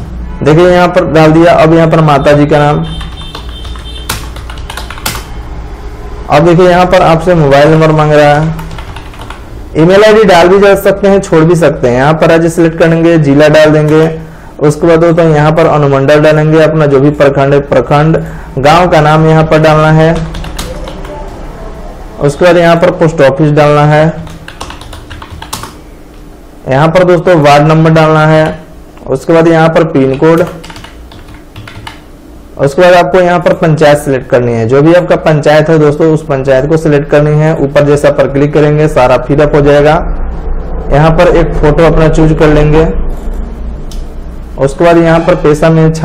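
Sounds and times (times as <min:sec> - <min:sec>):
computer keyboard typing: 0:02.8 - 0:05.4, 0:07.6 - 0:09.6, 0:19.5 - 0:21.4, 0:23.7 - 0:26.2, 0:29.8 - 0:32.1
keyboard key clicks: 0:03.0 - 0:05.3.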